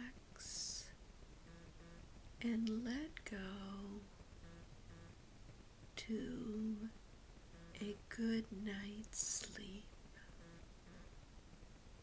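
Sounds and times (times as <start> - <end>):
woman whispering: 0.0 - 1.0, 2.4 - 4.1, 7.8 - 10.3.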